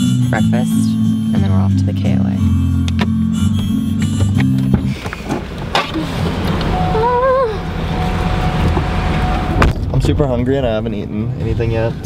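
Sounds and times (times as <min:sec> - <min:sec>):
car rumble: 0:00.0 - 0:12.0.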